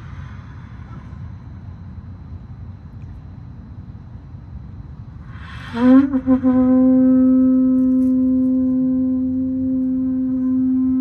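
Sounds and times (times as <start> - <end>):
wind instrument long low note: 5.3 - 11.0.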